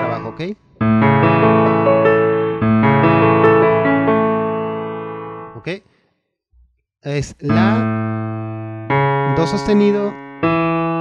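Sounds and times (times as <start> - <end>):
keyboard piano arpeggio: 0.0 - 5.6, 7.5 - 11.0.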